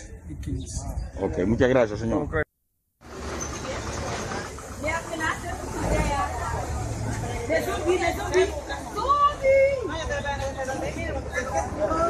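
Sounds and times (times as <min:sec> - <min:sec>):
vendors and shoppers chattering: 0:00.0 - 0:12.0.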